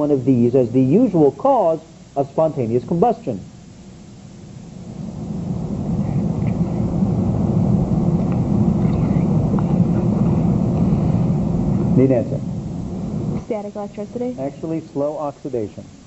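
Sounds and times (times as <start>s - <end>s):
steady low rumbling: 2.6s - 16.0s.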